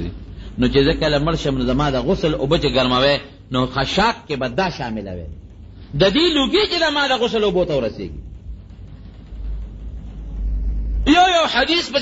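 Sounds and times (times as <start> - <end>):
low deep rumble: 0.0 - 12.0.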